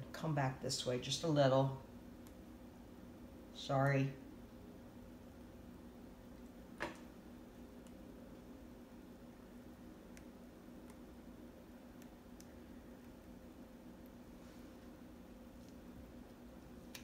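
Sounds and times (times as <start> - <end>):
low room hum: 0.0 - 17.0.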